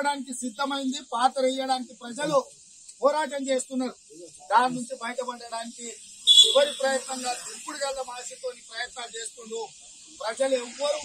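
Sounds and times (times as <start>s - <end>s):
faint steady hiss: 0.0s - 11.0s
man speaking into microphones: 0.0s - 11.0s.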